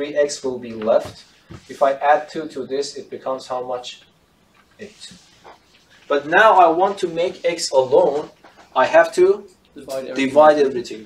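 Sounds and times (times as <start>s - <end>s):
marker strokes on whiteboard: 0.8s - 2.0s, 4.7s - 8.8s.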